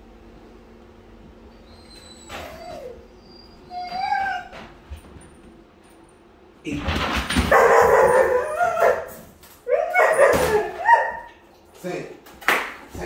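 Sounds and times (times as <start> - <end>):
puppy whining: 1.5 - 4.8, 7.5 - 11.4.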